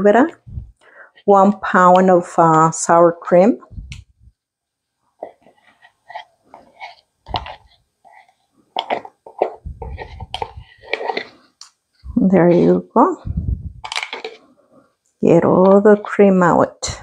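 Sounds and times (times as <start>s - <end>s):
spatula scraping plastic tub: 5.2s - 11.6s.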